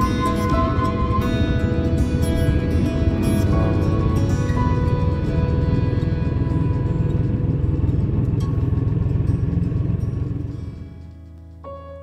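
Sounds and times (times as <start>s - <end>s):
motorcycle engine running: 0.0s - 11.6s
background music: 0.0s - 12.0s.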